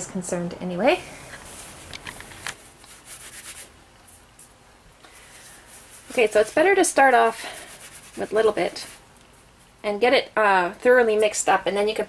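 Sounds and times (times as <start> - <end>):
insulation rustling by hand: 1.0 - 9.8.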